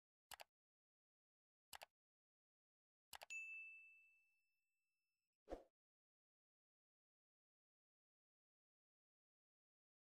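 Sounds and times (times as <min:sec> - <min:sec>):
notification bell ding: 0:03.3 - 0:04.2.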